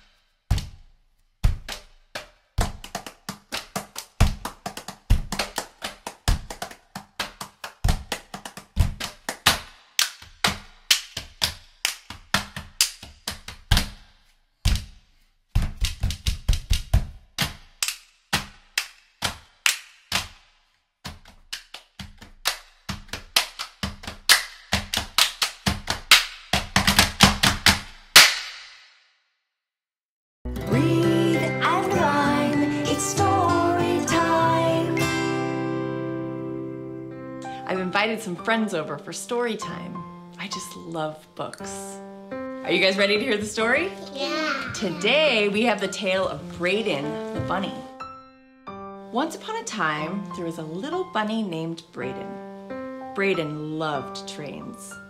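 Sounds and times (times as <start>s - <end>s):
hand claps and finger snaps: 1.6s - 14.1s, 15.8s - 20.5s, 21.1s - 28.8s.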